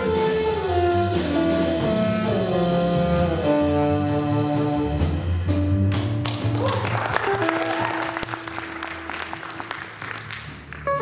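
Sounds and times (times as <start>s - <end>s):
jazz band chord: 0.0s - 6.5s, 7.2s - 11.0s
audience applause: 6.2s - 11.0s.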